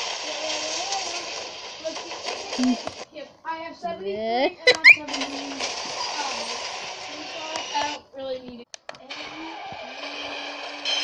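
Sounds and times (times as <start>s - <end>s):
person speaking: 4.1s - 5.1s.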